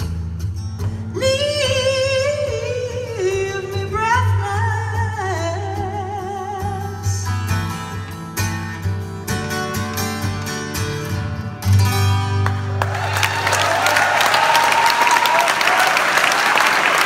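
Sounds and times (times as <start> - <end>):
strummed acoustic guitar: 0.0 - 12.8
woman singing with vibrato: 1.1 - 7.4.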